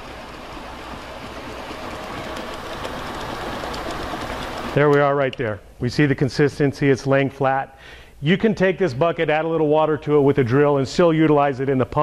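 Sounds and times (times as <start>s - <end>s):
mortar mixer humming: 0.0s - 5.1s.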